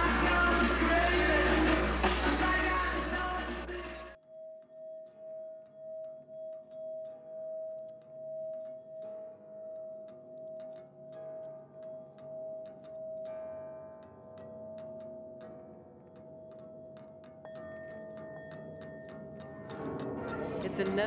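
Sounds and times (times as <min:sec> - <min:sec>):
sustained ringing tone: 0:00.0 - 0:20.6.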